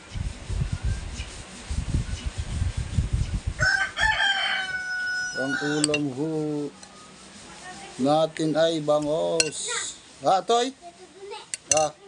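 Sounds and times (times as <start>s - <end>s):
rooster crowing: 3.6s - 7.2s.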